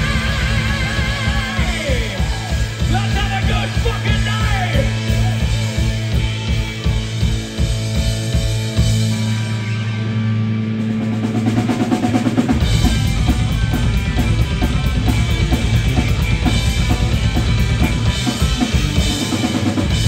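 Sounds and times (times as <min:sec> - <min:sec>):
fast dense drum beat: 0:00.0 - 0:09.3, 0:11.2 - 0:20.0
heavy metal band playing: 0:00.0 - 0:20.0.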